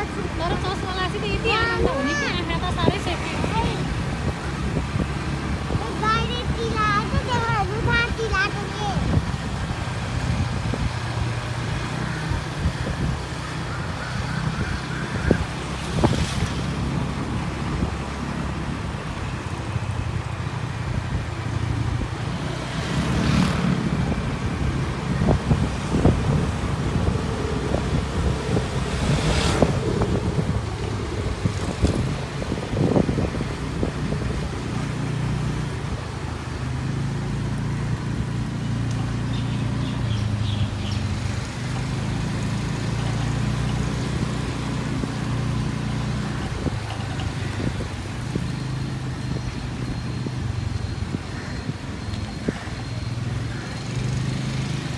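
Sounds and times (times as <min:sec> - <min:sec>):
road and wind noise: 0:00.0 - 0:54.9.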